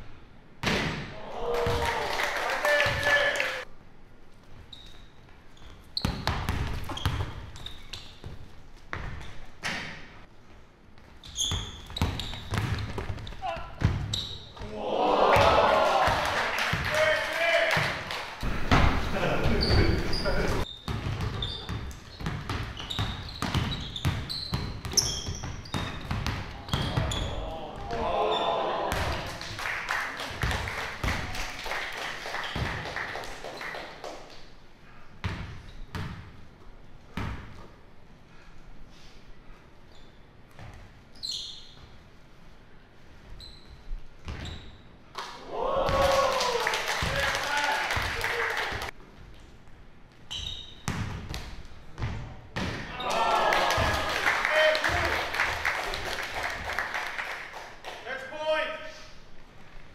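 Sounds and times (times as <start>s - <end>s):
sneaker squeaks: 4.5s - 10.1s, 11.0s - 14.7s, 18.9s - 27.5s, 35.2s - 36.3s, 39.8s - 42.1s, 43.2s - 45.0s, 50.1s - 52.4s.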